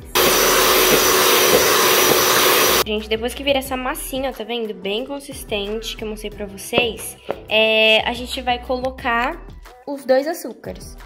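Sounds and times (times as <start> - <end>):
electric mixer running: 0.0 - 2.8.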